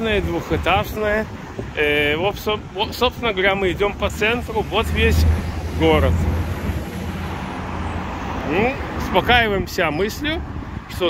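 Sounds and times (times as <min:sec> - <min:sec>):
steady traffic noise: 0:00.0 - 0:11.0
car passing close by: 0:04.1 - 0:09.3.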